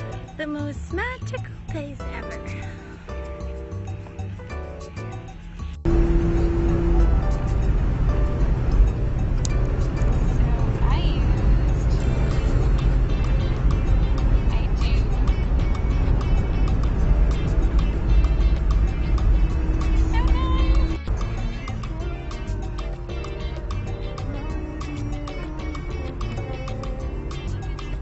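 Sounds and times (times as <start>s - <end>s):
car cabin road and engine rumble: 0.0s - 28.0s
music playing: 0.0s - 28.0s.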